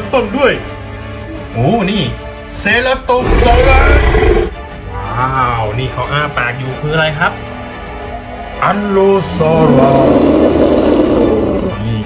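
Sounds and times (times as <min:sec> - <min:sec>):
toy dinosaur roar: 0:03.2 - 0:04.6, 0:09.5 - 0:11.9.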